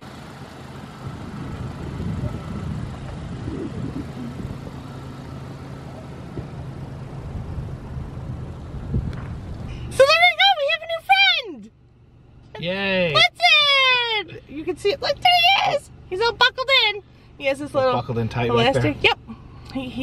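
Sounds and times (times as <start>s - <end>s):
car engine and tyres passing: 0.0s - 20.0s.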